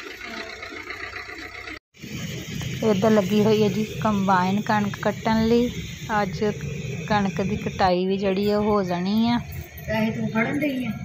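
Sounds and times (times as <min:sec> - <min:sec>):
car engine running low: 0:00.0 - 0:11.0.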